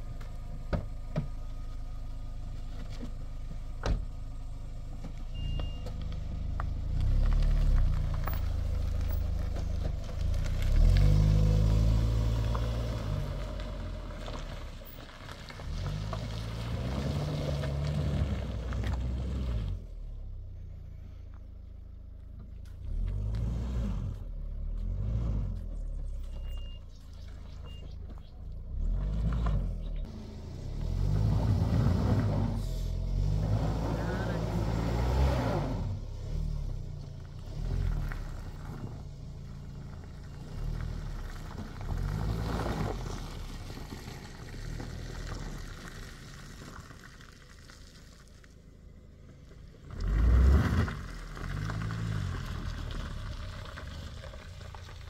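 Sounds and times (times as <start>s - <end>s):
car engine revving: 6.2s - 20.1s, 22.6s - 46.4s, 49.4s - 55.0s.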